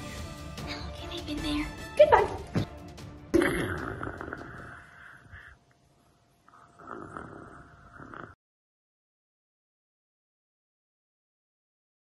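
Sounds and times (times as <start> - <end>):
child pretend snoring: 3.4 - 5.2, 6.5 - 8.4.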